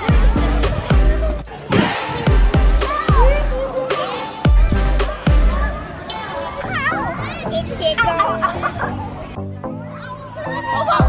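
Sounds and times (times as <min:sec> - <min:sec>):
background music: 0:00.0 - 0:11.0
children's voices at play: 0:00.0 - 0:11.0.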